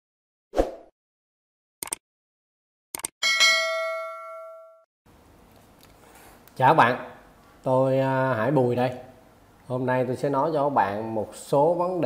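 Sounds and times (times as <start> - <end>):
bright bell ding: 3.2 - 4.8.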